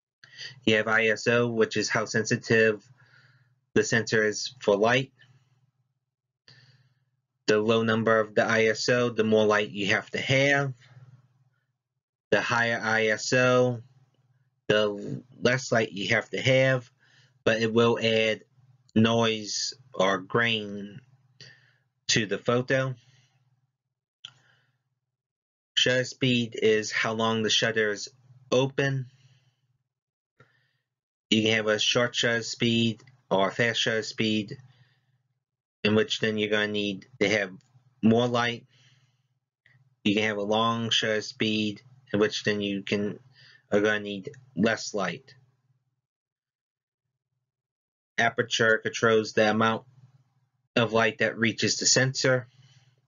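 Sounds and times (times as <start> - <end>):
faint short breath: 0.2 - 0.6, 2.9 - 3.6, 6.5 - 7.1, 21.4 - 21.8, 38.7 - 39.3, 52.5 - 53.0
soft intake of breath: 0.3 - 0.6, 3.0 - 3.5
man narrating: 0.4 - 2.8, 3.8 - 5.1, 7.5 - 10.8, 12.4 - 13.8, 14.7 - 16.9, 17.5 - 18.4, 19.0 - 21.0, 22.1 - 23.0, 25.8 - 29.1, 31.3 - 34.6, 35.9 - 38.6, 40.1 - 45.2, 48.2 - 49.8, 50.8 - 52.4
person speaking: 0.4 - 2.8, 3.8 - 5.1, 7.5 - 10.8, 12.4 - 13.8, 14.7 - 16.9, 17.5 - 18.4, 19.0 - 21.0, 22.1 - 23.0, 25.8 - 29.1, 31.3 - 34.6, 35.9 - 38.6, 40.1 - 45.2.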